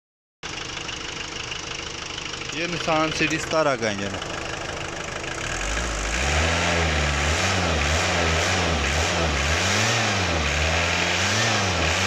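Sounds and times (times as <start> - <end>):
diesel engine idling: 0.4 - 9.6.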